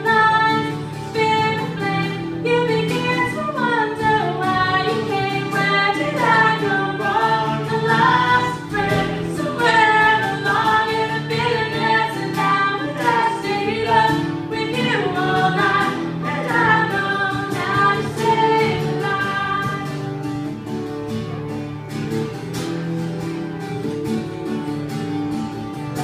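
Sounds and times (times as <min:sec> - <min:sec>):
woman singing: 0:00.0 - 0:20.1
strummed acoustic guitar: 0:00.0 - 0:26.0.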